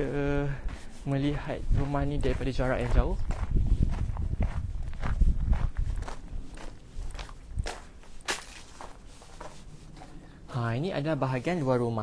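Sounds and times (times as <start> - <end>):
footsteps on gravel: 0.6 - 10.2
low rumble: 1.4 - 8.0.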